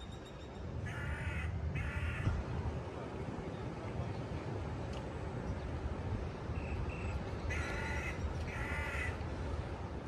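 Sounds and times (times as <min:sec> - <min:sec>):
wind rumble on microphone: 0:00.0 - 0:10.0
crow cawing: 0:00.9 - 0:02.3, 0:07.5 - 0:09.2.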